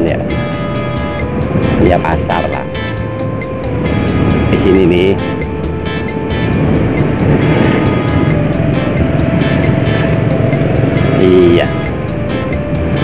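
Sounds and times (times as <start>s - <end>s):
background music with steady beat: 0.0s - 13.0s
road rumble: 0.0s - 13.0s
motorbike engine: 2.8s - 13.0s.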